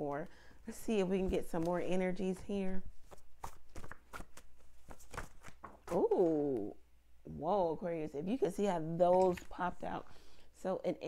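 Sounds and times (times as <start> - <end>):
cards being shuffled: 3.0 - 6.7.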